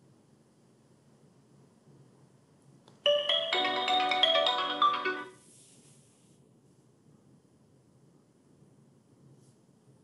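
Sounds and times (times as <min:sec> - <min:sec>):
phone ringtone melody: 0:03.1 - 0:05.4.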